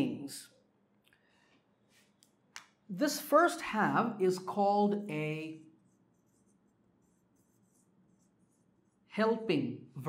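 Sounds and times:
marker squeaking on whiteboard: 5.8s - 9.0s.

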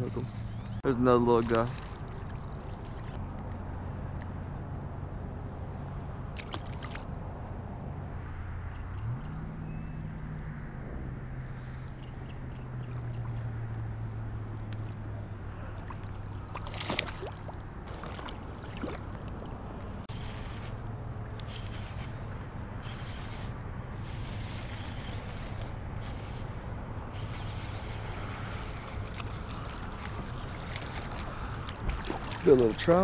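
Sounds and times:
water sloshing and splashing: 0.3s - 4.3s, 6.3s - 7.2s, 14.6s - 22.3s, 27.2s - 33.0s
low motor hum: 1.7s - 33.0s
sharp splash or knock: 6.4s - 7.1s, 15.8s - 19.0s, 31.8s - 32.7s.

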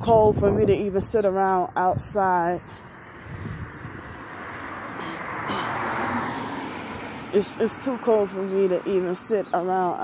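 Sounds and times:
car passing: 2.5s - 9.4s.

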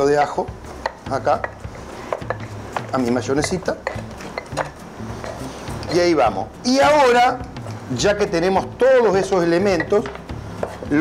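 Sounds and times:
utensils clinking: 0.0s - 6.1s, 9.3s - 10.9s
background music with bass line: 0.0s - 11.0s.

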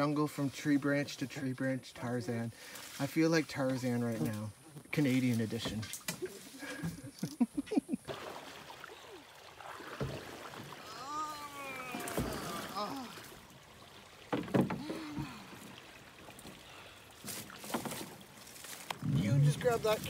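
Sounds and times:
canoe hull scraping branches: 2.3s - 7.1s, 8.1s - 20.0s
rough rustling: 14.1s - 20.0s.

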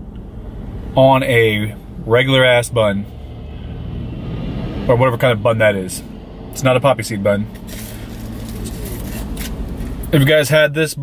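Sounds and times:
car cabin hum: 0.0s - 3.7s, 4.7s - 11.0s
foil wrapper crinkling: 7.6s - 9.9s.

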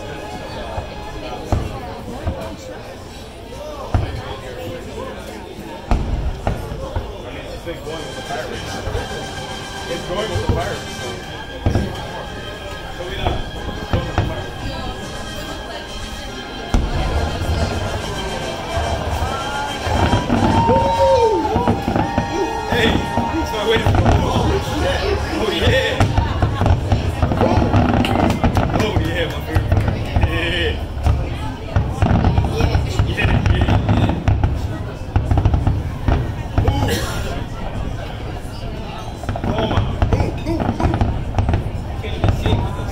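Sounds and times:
fireworks booming and crackling: 0.0s - 42.9s.

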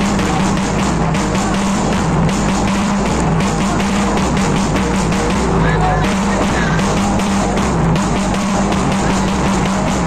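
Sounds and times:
loud music over loudspeaker: 0.0s - 10.0s.

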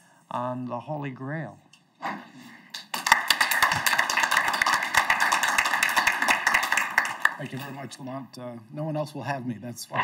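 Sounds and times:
audience applauding: 2.7s - 7.8s.

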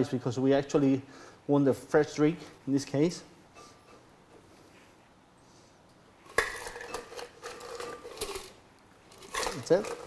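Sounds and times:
ice chips clinking and rattling: 6.4s - 10.0s.

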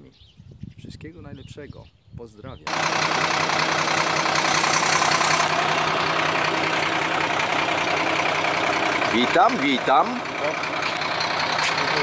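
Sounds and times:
diesel truck engine idling: 2.7s - 12.0s.

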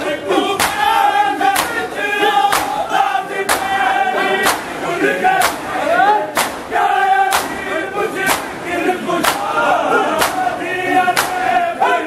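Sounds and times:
men singing a lament in unison: 0.0s - 12.0s
hands slapping bare chests: 0.6s - 0.8s, 1.6s - 1.8s, 2.5s - 2.8s, 6.4s - 6.6s, 7.3s - 7.6s, 8.3s - 8.5s, 9.2s - 9.5s, 10.2s - 10.4s, 11.2s - 11.4s.

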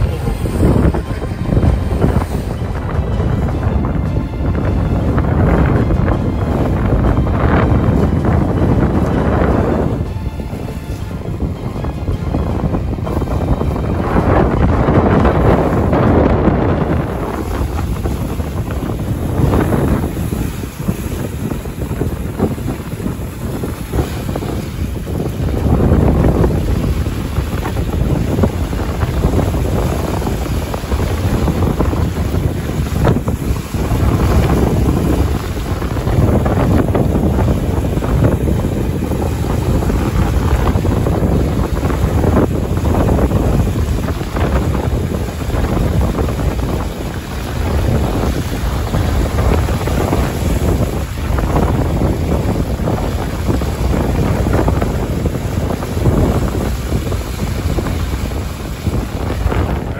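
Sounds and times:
water churning in boat wake: 0.0s - 59.9s
wind buffeting microphone: 0.0s - 59.9s.

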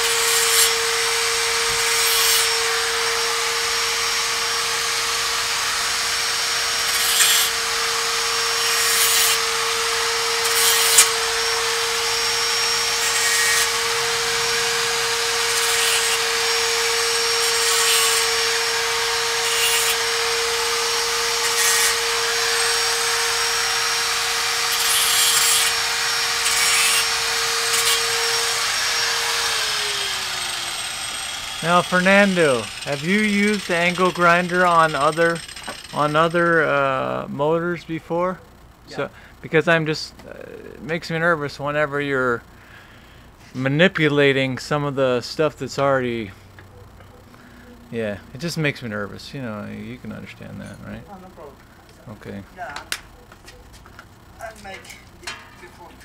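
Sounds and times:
grinder winding down: 0.0s - 37.9s
angle grinder cutting metal: 0.0s - 39.1s.

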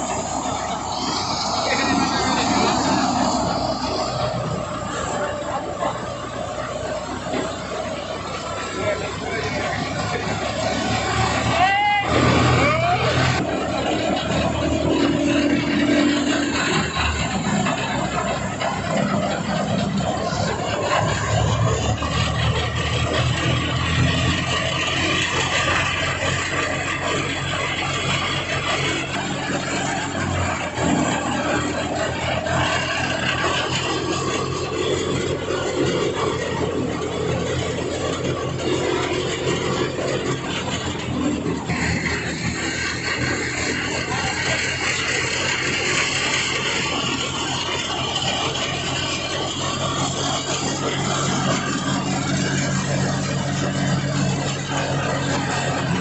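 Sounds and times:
low engine drone: 0.0s - 56.0s
thresher mechanical din: 0.0s - 56.0s.

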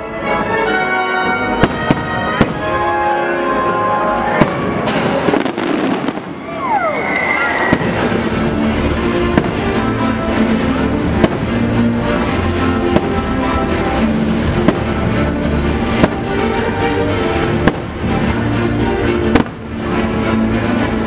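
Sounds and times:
loud show music: 0.0s - 6.0s, 7.7s - 21.0s
fireworks bangs: 1.2s - 3.2s, 4.3s - 6.7s, 7.4s - 21.0s
falling firework whistle: 4.4s - 8.1s.

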